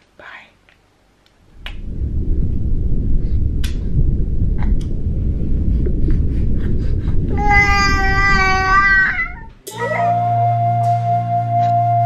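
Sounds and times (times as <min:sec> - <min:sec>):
handling noise rumble: 0:01.4 - 0:09.7.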